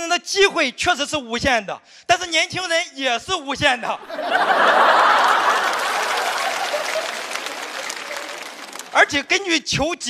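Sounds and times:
audience laughing: 4.0s - 9.0s
studio audience applauding: 4.4s - 9.4s.

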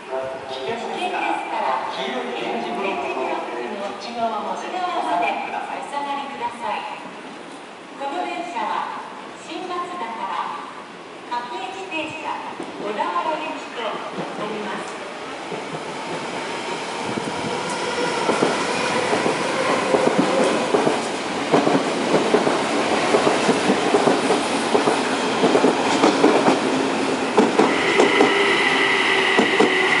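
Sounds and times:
train wheels clacking over rail joints: 18.2s - 28.5s, 29.1s - 29.9s.

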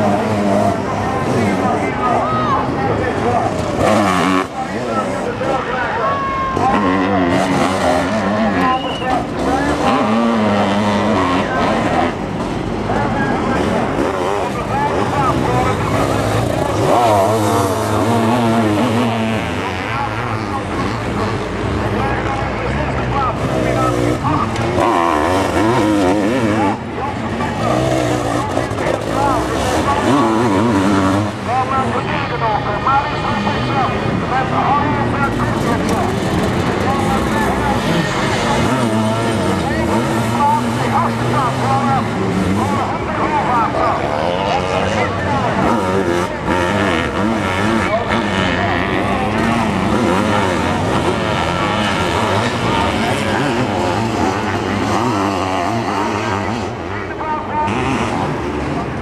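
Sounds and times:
motorcycle engines revving: 0.0s - 59.0s.

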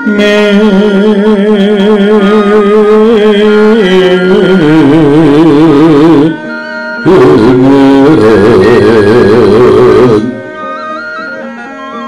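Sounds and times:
sustained wavering tone: 0.0s - 12.0s
gamelan playing loudly: 6.2s - 12.0s.

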